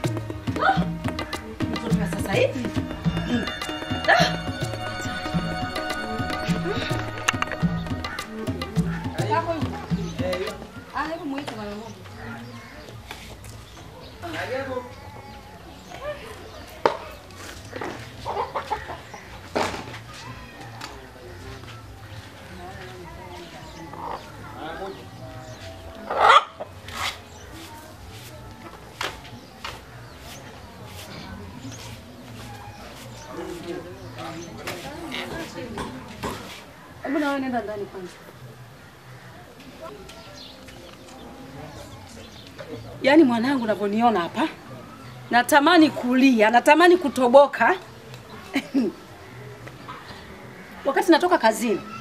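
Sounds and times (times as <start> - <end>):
faint distant voices: 0.0 - 52.0
chickens clucking: 17.7 - 19.6, 25.5 - 26.8.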